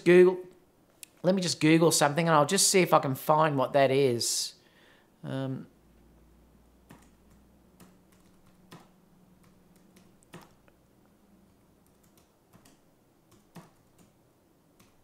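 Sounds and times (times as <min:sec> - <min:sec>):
typing on computer keyboard: 0:06.9 - 0:10.6, 0:11.8 - 0:14.2, 0:14.8 - 0:15.0.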